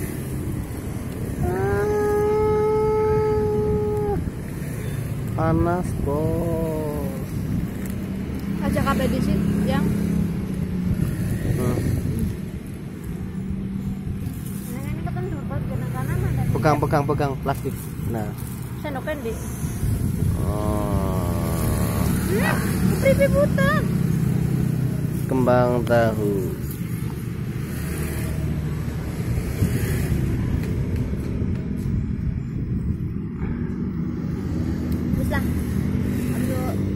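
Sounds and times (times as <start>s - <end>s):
faint voice: 20.3s - 22.6s.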